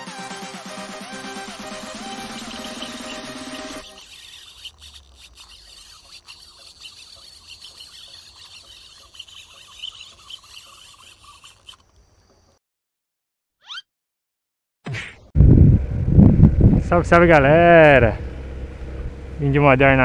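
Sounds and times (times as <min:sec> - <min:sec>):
electronic music: 0:00.0 - 0:03.9
birds chirping: 0:01.5 - 0:12.5.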